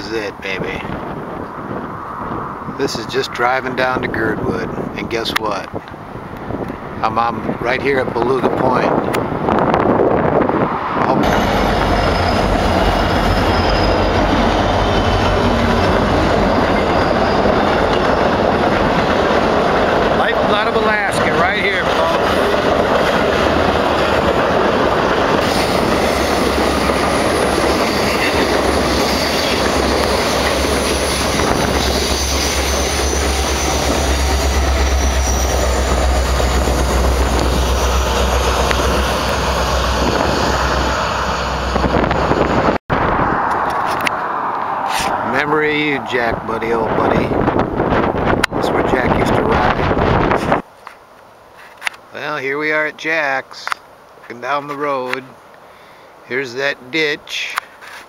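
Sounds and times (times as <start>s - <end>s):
train wheels on rails: 11.0s - 42.8s
wheel squeal: 11.3s - 19.2s, 25.4s - 38.8s.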